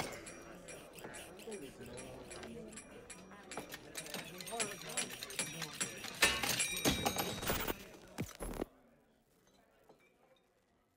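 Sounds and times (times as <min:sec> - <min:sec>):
faint muffled voices: 0:00.0 - 0:10.9.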